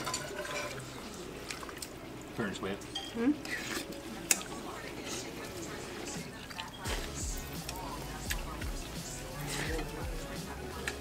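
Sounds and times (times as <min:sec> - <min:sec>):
background music: 0:04.6 - 0:11.0.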